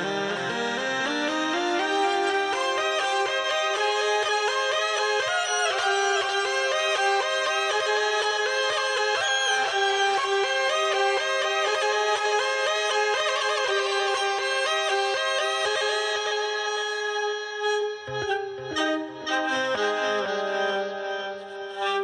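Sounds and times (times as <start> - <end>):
hurdy-gurdy melody over drone: 0.0 - 22.0.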